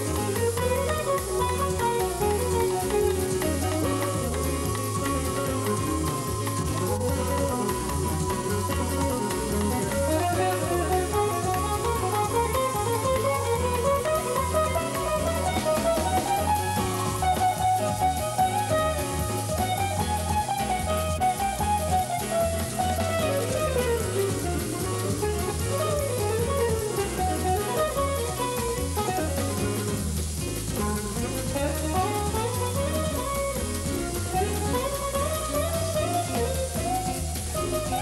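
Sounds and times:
drum kit with cymbals: 0.0s - 38.0s
electric guitar melodic runs: 0.0s - 38.0s.

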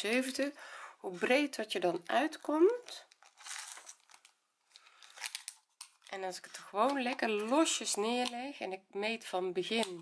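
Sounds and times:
faint rustle of tape measure: 3.2s - 4.2s.

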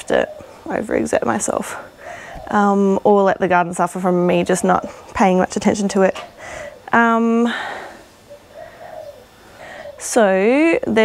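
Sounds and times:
dove cooing faintly: 0.0s - 11.0s.

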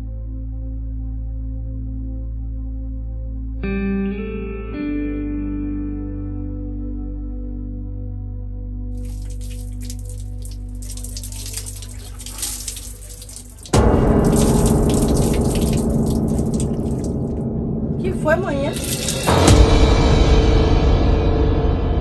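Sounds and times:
quiet background music: 0.0s - 20.5s
water splashing and dripping: 9.0s - 19.6s
loud dramatic music: 13.8s - 22.0s
sharp hit: 13.8s - 22.0s.

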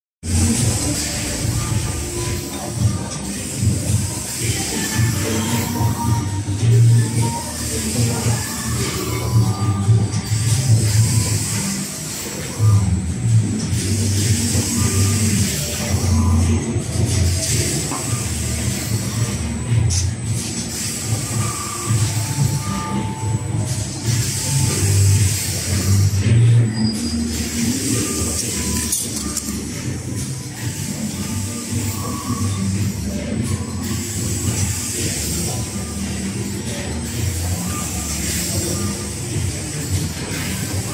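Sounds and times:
background music: 0.2s - 40.9s
printing machine rumble and hiss: 0.2s - 40.9s.

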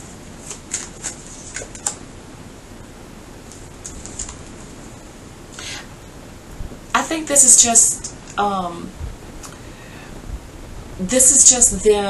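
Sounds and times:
cards being shuffled: 0.4s - 2.0s, 3.5s - 4.7s.

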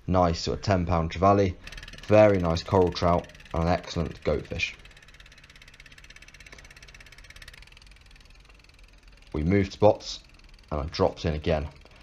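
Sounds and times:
faint boat engine pulsing: 1.5s - 12.0s.

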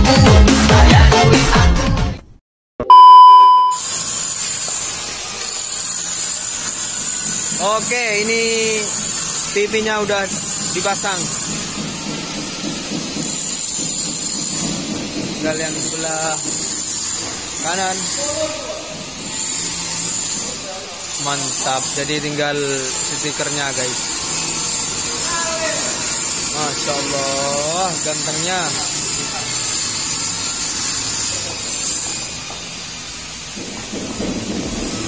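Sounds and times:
music: 0.0s - 2.4s
loud electronic beep: 2.8s - 3.8s.

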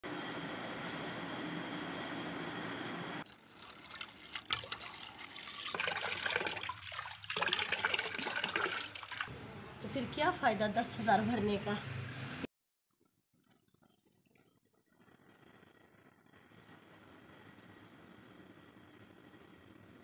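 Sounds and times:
water splashing on face: 3.4s - 9.3s.

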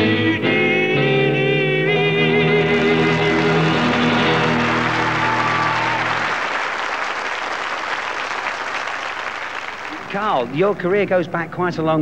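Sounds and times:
audience applauding: 2.6s - 11.0s.

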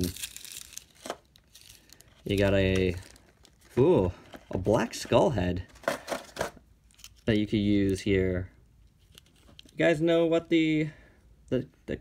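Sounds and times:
plastic packaging crinkling: 0.0s - 5.1s.

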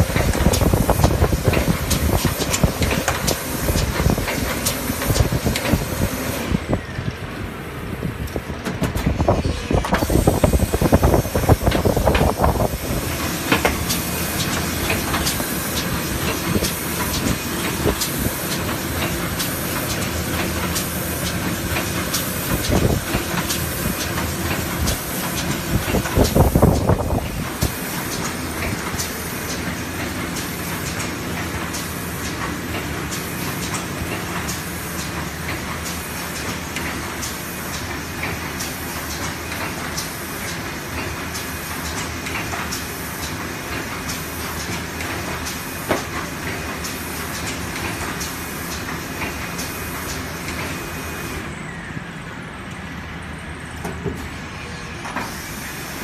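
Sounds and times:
regular mechanical clicking: 0.0s - 6.5s, 8.2s - 51.4s
binding machine running: 0.0s - 56.0s.

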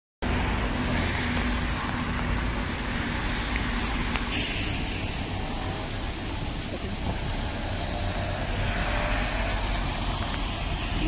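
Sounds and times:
road vehicle noise: 0.2s - 11.0s.

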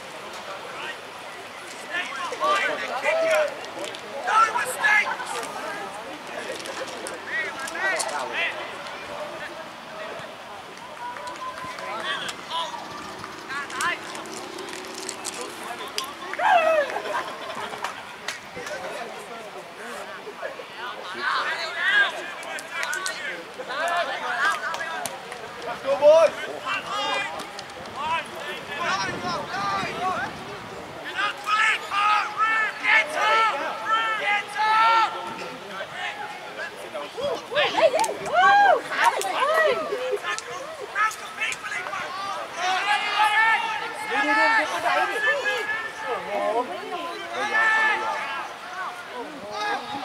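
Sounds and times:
distant shouted calls and chatter: 0.0s - 50.0s.

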